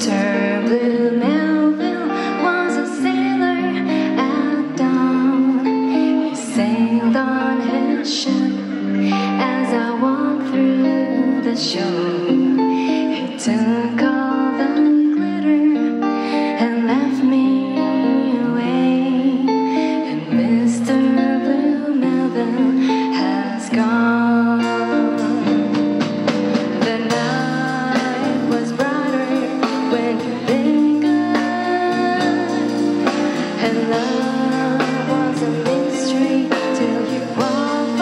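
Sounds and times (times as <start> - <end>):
live band playing pop song: 0.0 - 38.0
woman singing: 0.0 - 38.0.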